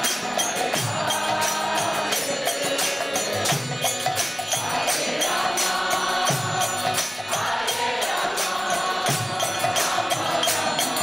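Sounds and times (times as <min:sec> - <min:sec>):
group chanting: 0:00.0 - 0:11.0
hand cymbals: 0:00.0 - 0:11.0
harmonium: 0:00.0 - 0:11.0.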